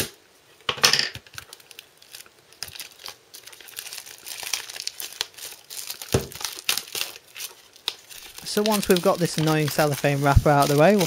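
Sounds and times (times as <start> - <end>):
cellophane crinkling and tearing: 1.2 - 11.0.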